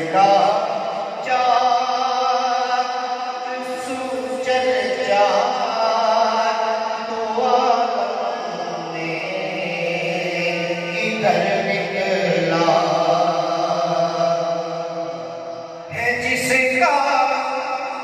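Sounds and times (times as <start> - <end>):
man chanting into microphone: 0.0 - 18.0.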